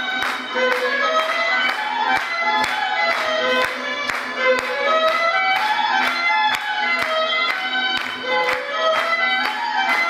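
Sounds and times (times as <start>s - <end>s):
violin-led folk dance music: 0.0s - 10.0s.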